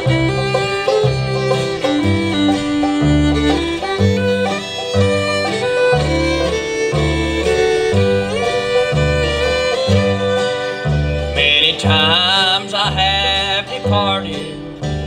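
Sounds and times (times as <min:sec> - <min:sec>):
bluegrass band playing: 0:00.0 - 0:15.0
fiddle: 0:00.0 - 0:15.0
upright bass plucking: 0:00.0 - 0:15.0
wavering melody line: 0:00.0 - 0:15.0.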